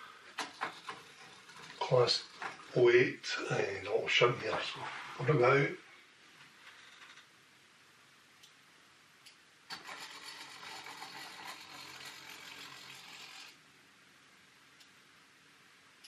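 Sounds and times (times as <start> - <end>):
small electric motor running: 9.7 - 13.6.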